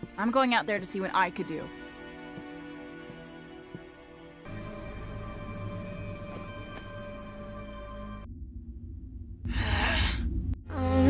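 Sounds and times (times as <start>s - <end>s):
music: 0.0s - 8.3s
low rumble: 4.5s - 11.0s.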